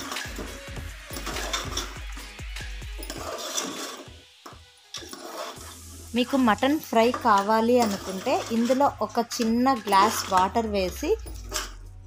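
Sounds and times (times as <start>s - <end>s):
spoon scraping pressure cooker: 0.0s - 11.8s.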